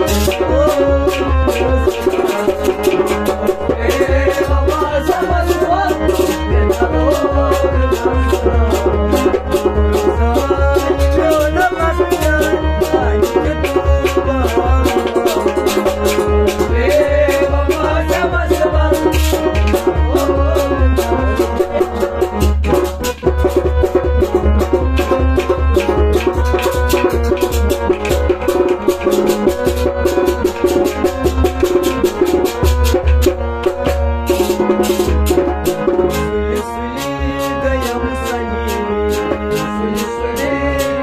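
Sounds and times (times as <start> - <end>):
man singing sad song: 0.0 - 2.8, 3.4 - 21.9, 36.5 - 41.0
harmonium: 0.0 - 41.0
steady percussion beat: 0.0 - 41.0.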